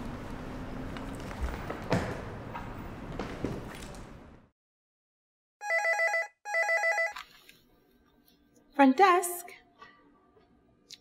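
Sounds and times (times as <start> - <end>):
telephone ringing: 5.6 - 7.2.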